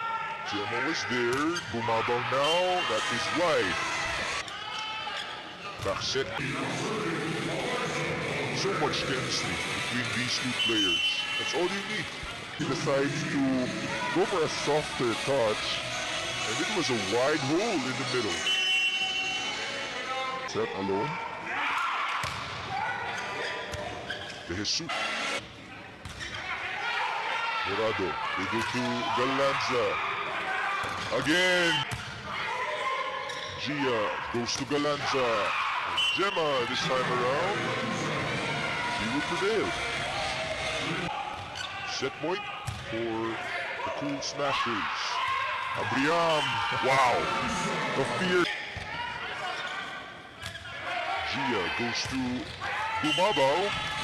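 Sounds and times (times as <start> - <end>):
shoes squeaking on court floor: 23.1 - 24.5, 40.6 - 41.9, 49.5 - 50.8
faint voices: 36.2 - 54.0.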